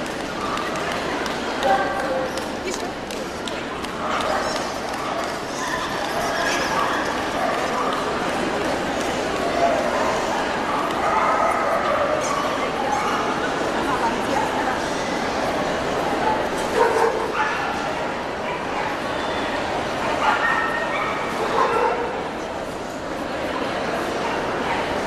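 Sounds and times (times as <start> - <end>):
crowd chatter in large hall: 0.0 - 25.0.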